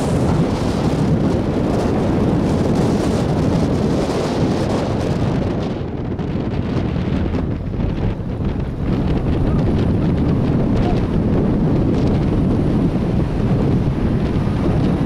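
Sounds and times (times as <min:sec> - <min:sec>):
vehicle rumbling over sand: 0:00.0 - 0:15.0
wind buffeting microphone: 0:00.0 - 0:15.0.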